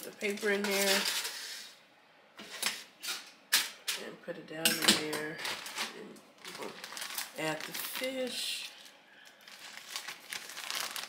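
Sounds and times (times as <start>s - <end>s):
paper liner rustling: 5.5s - 11.0s.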